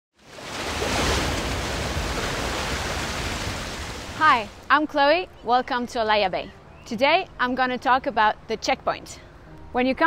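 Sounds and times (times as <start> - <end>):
wave rushing water: 0.2 - 4.7.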